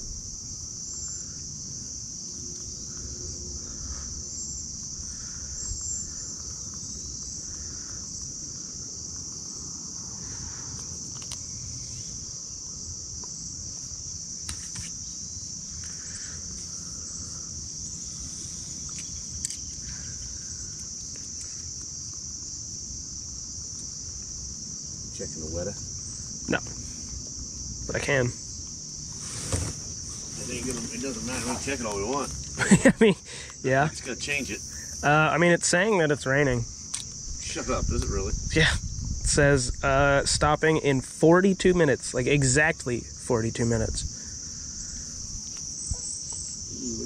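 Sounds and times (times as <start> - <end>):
insect chorus drone: 0.0 - 47.0.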